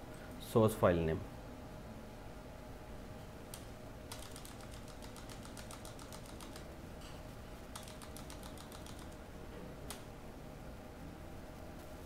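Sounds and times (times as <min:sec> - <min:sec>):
keyboard keys tapping: 0:04.1 - 0:06.7, 0:07.7 - 0:09.2.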